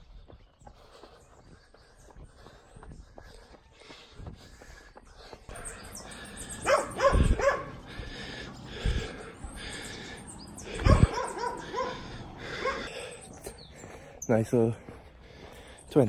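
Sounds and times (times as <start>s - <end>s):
dog barking and yipping: 6.6s - 7.8s, 10.8s - 12.9s.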